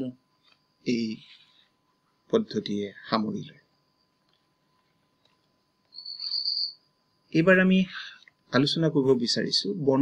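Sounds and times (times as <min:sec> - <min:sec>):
insect trill: 0:00.0 - 0:10.0.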